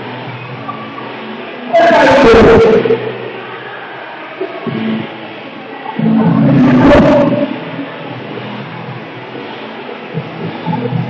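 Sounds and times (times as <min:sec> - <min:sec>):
loud vocal shout: 0:01.7 - 0:03.0.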